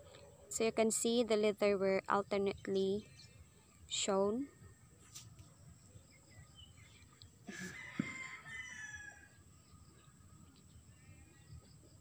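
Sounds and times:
faint animal call: 0:07.4 - 0:09.3.

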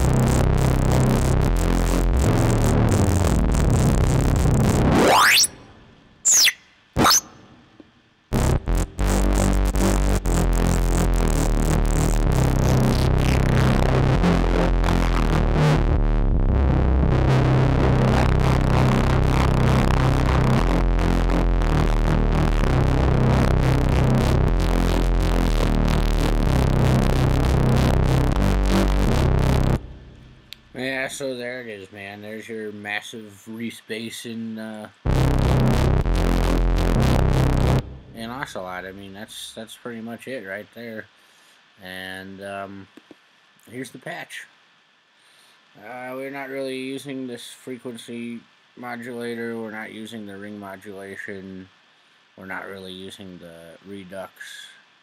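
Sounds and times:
heavy low synth music: 0:00.0 - 0:05.8, 0:08.3 - 0:31.1, 0:35.1 - 0:39.1
short rising synth chirps: 0:04.9 - 0:05.7, 0:06.3 - 0:07.6.

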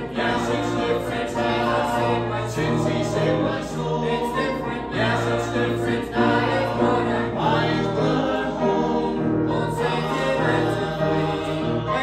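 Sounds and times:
choir singing in harmony: 0:00.0 - 0:12.0.

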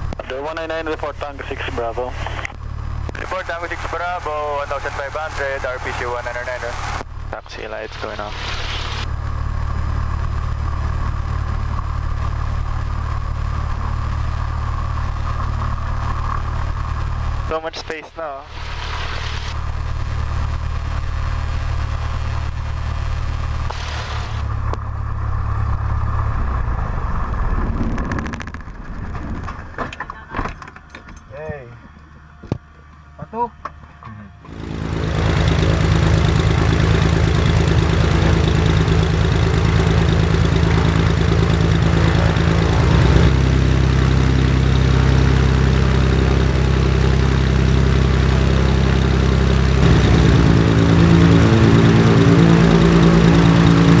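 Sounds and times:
piston aircraft engine running: 0:00.0 - 0:29.9, 0:30.5 - 0:54.0.

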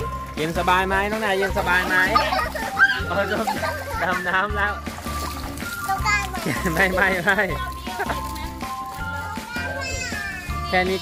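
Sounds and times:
background music with held notes: 0:00.0 - 0:11.0
children playing: 0:00.0 - 0:11.0
child speaking: 0:05.8 - 0:06.6, 0:09.3 - 0:11.0.

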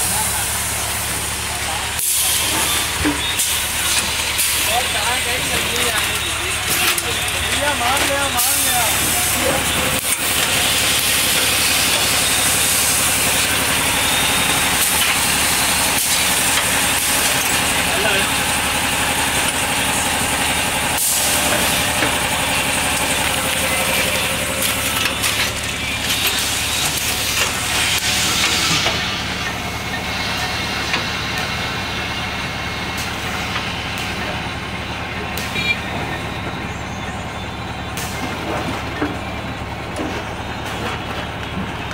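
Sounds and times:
loud hiss: 0:00.0 - 0:32.3
machine hum: 0:00.0 - 0:41.9.

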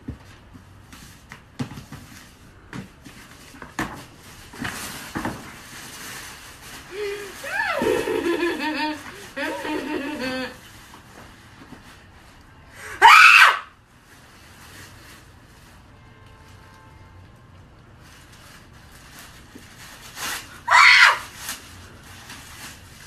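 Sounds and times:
woman screaming in excitement: 0:07.4 - 0:07.9, 0:13.0 - 0:13.7, 0:20.7 - 0:21.2.

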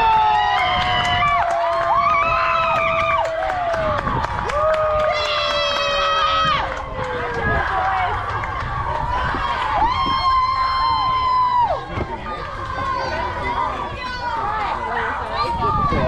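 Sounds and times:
scattered claps: 0:00.0 - 0:10.0
children cheering and shouting: 0:00.0 - 0:16.0.

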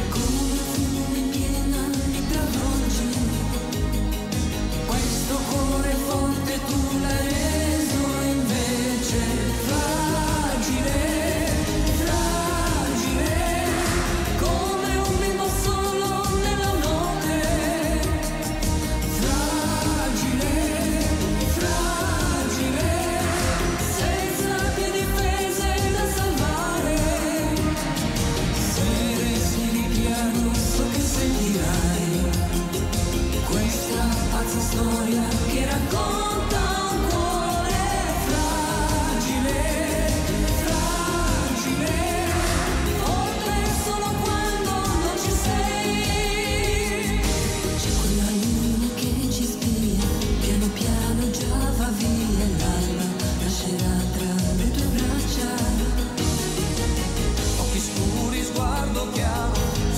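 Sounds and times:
band with steady beat: 0:00.0 - 0:59.9
man and woman singing duet: 0:00.0 - 0:59.9.

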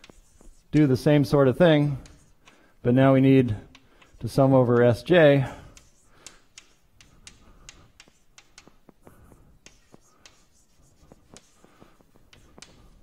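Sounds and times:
chalk tapping and scratching: 0:00.0 - 0:02.8, 0:03.4 - 0:13.0.

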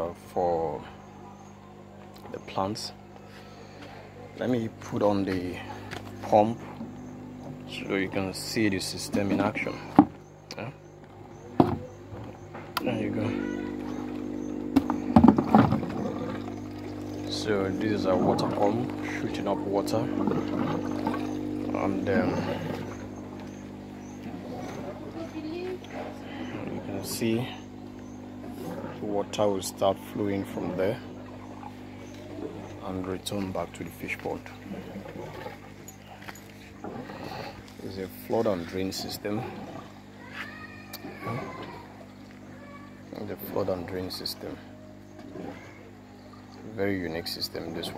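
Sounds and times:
electric water pump humming: 0:00.0 - 0:47.9.

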